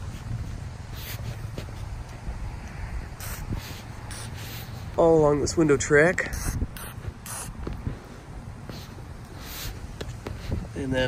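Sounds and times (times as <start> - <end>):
wind rumble on microphone: 0.0 - 11.0
aerosol can squirts: 3.2 - 4.6, 6.3 - 7.6.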